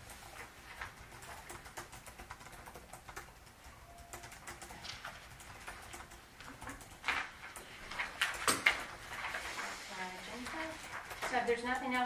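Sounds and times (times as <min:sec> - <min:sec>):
quick irregular clicks: 0:00.0 - 0:08.9.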